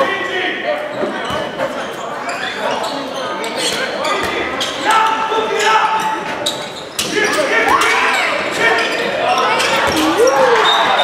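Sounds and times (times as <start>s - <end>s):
shoes squeaking: 0.9s - 5.0s, 5.6s - 11.0s
players shouting: 9.9s - 11.0s.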